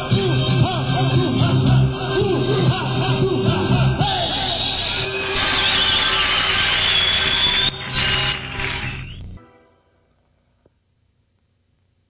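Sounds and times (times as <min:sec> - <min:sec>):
drums and cymbals: 0:00.0 - 0:08.3
wavering high whistle: 0:04.1 - 0:09.4.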